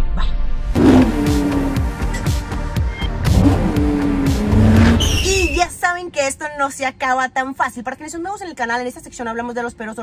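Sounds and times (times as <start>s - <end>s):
car engine surging: 0.7s - 5.7s.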